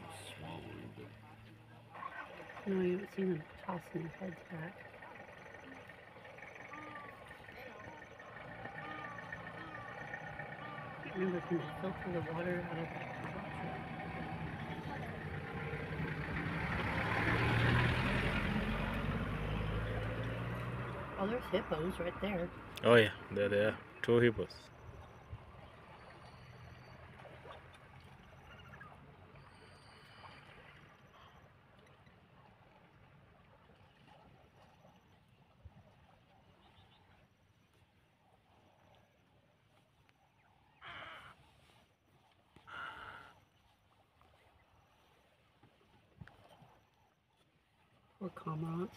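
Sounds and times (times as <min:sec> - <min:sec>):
low engine hum: 0:00.0 - 0:48.9.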